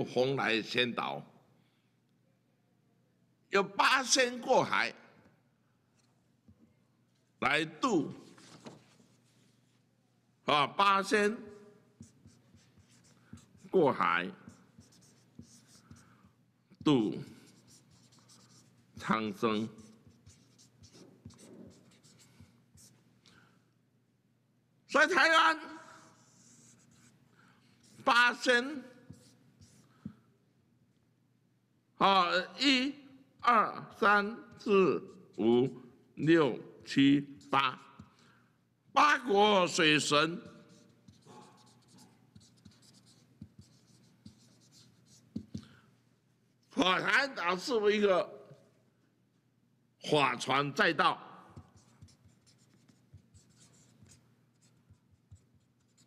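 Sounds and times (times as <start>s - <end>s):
marker scratching on paper: 8.2s - 9.8s, 11.5s - 23.0s, 26.0s - 28.1s, 29.0s - 30.2s, 36.8s - 38.2s, 40.0s - 45.7s, 51.5s - 56.0s.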